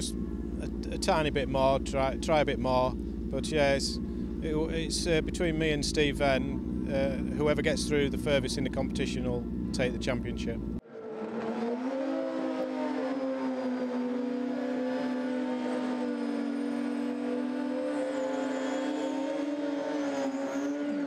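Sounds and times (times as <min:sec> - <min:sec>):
motorbike engine at high rev: 0:00.0 - 0:21.0.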